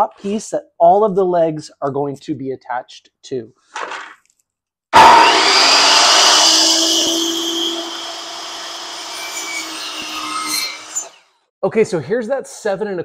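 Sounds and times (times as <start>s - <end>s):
miter saw cutting wood: 5.0s - 11.2s.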